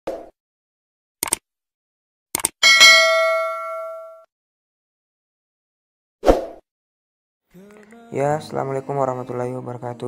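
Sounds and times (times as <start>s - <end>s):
bell ding: 2.6s - 4.3s.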